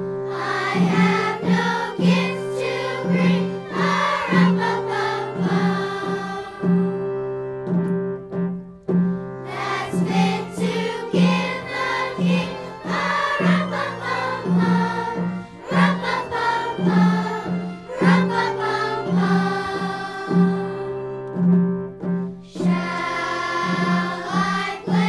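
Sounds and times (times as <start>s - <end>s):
instrumental accompaniment: 0.0s - 25.0s
choir singing: 0.2s - 7.3s, 9.4s - 21.3s, 22.5s - 25.0s.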